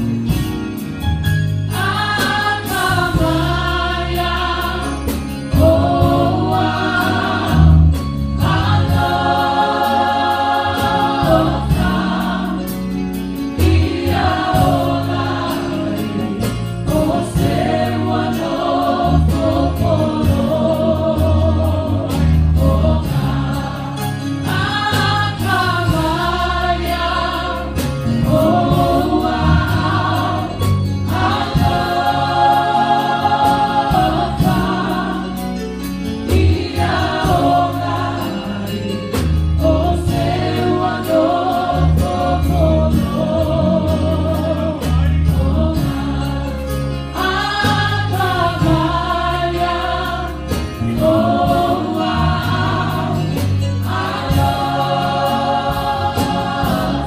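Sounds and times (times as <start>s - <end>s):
choir singing gospel song: 0.0s - 57.0s
keyboard accompaniment: 0.0s - 57.0s.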